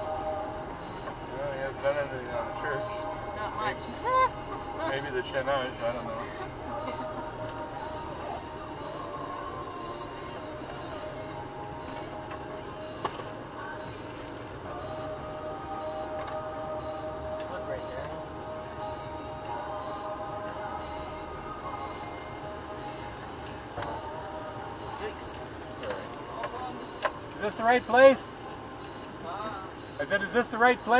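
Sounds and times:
engine running with whine: 0.0s - 30.2s.

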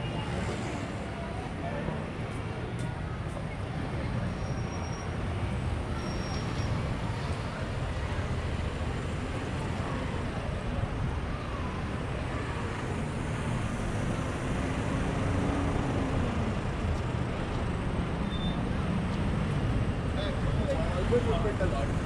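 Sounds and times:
traffic passing: 0.0s - 22.0s.

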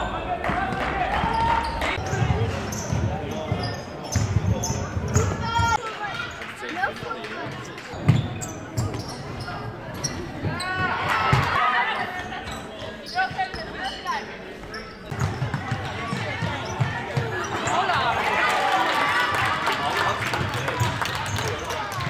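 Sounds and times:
voices in sports hall: 0.0s - 22.0s
sneakers squeaking on floor: 1.2s - 5.8s, 7.5s - 18.0s
basketball bouncing on wooden court: 15.0s - 17.3s.

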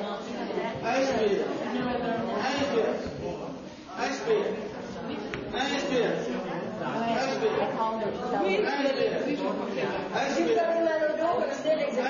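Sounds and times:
overlapping chatter: 0.0s - 12.0s.

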